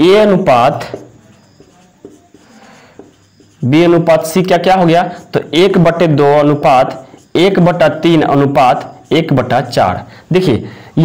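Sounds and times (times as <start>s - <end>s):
marker scratching on whiteboard: 0.0s - 10.4s
light marker taps: 0.7s - 3.6s.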